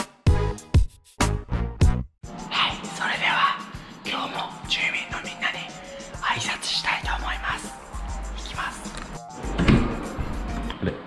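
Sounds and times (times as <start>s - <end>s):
background music: 0.0s - 11.0s
man whispering: 2.5s - 9.1s.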